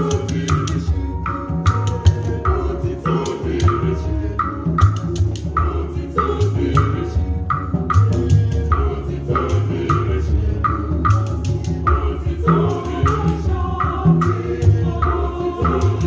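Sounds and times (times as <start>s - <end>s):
hand drums playing a beat: 0.0s - 16.0s.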